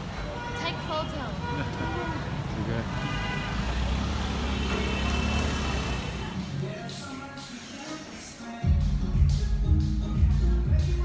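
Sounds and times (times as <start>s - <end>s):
low rumble of passing vehicles: 0.0s - 6.8s.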